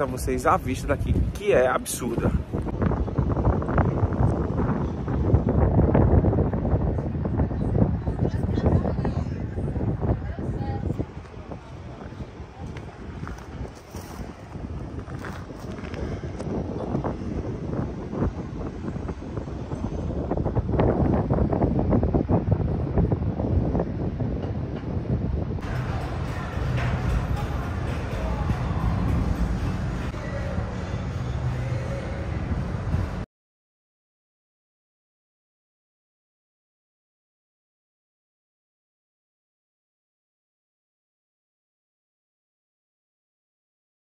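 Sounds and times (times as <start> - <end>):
wind buffeting microphone: 0.0 - 33.2.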